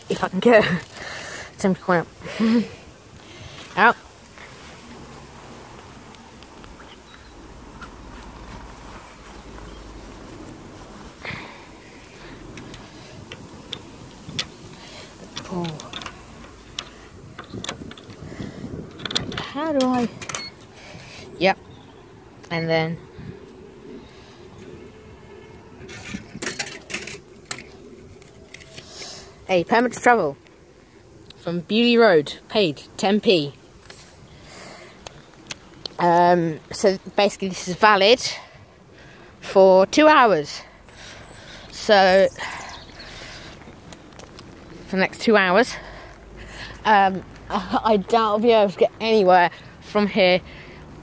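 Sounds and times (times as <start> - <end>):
distant road traffic rumble: 0.0 - 51.0.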